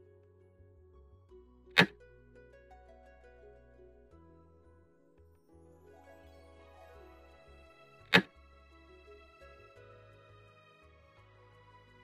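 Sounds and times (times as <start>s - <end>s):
soft plucked-string music: 0.0s - 12.0s.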